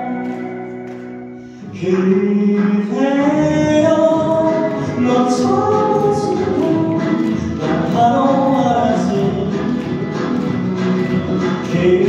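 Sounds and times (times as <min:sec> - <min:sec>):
live concert singing: 0:00.0 - 0:12.0.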